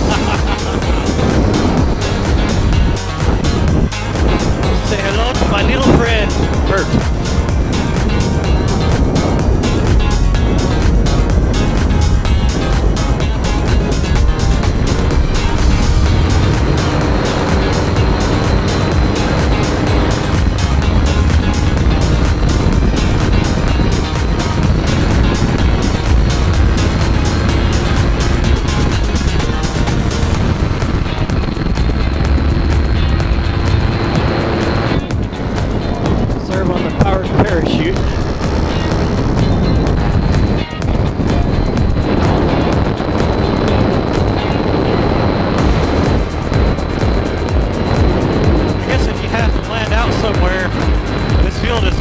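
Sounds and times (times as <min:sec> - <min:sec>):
background music with steady beat: 0:00.0 - 0:52.0.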